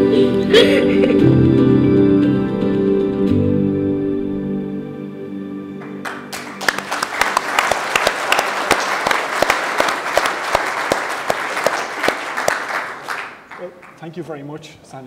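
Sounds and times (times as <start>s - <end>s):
soft instrumental music: 0.0s - 7.2s
audience applauding: 5.8s - 14.2s.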